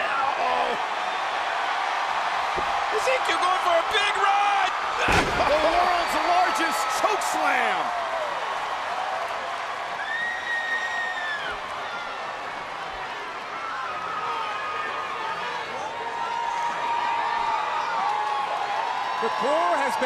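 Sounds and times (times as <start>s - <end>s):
arena crowd cheering: 0.0s - 20.0s
high whoops: 10.0s - 11.6s.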